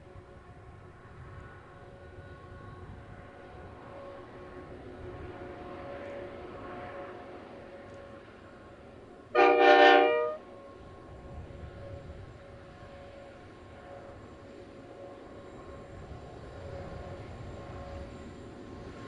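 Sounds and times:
diesel locomotive engine drone: 0:00.0 - 0:19.0
locomotive air horn blast: 0:09.4 - 0:10.4.

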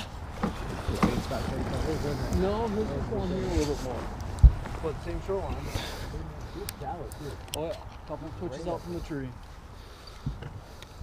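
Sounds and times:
wind rumbling on microphone: 0:00.0 - 0:05.7.

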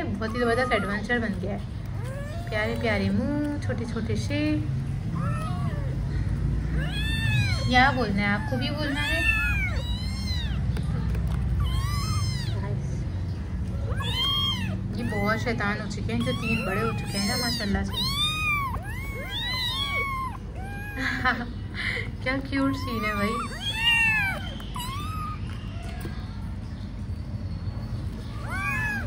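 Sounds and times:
kittens meowing: 0:00.0 - 0:03.6, 0:04.9 - 0:13.1, 0:13.7 - 0:21.6, 0:22.4 - 0:26.3, 0:28.1 - 0:29.0.

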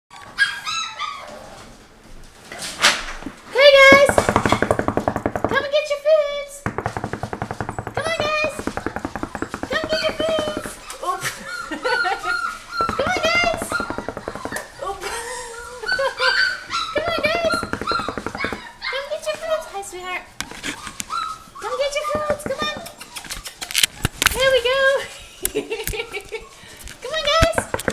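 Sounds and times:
puppies yelping and whining: 0:00.1 - 0:01.7, 0:08.2 - 0:24.3.

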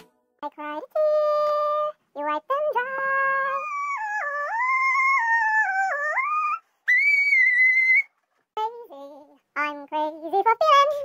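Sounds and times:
sped-up high-pitched female singing: 0:00.4 - 0:06.6, 0:08.6 - 0:11.0.

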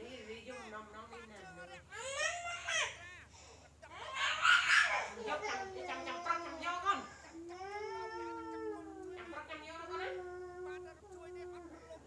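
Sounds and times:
long drawn-out vocal cries: 0:03.9 - 0:12.0.

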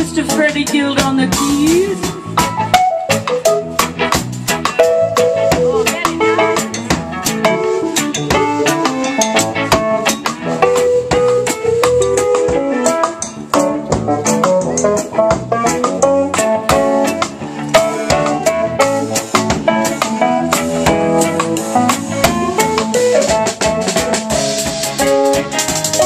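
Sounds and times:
bass: 0:00.0 - 0:26.0
drum kit beat: 0:00.0 - 0:26.0
electric guitar: 0:00.0 - 0:26.0
keyboard lead line: 0:00.0 - 0:26.0.

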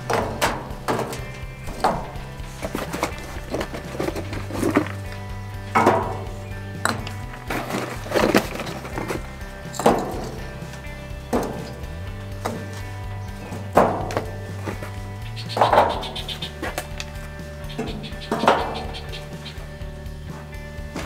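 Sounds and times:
wood chunks knocking onto charcoal: 0:00.0 - 0:19.8
background music: 0:00.0 - 0:21.0.

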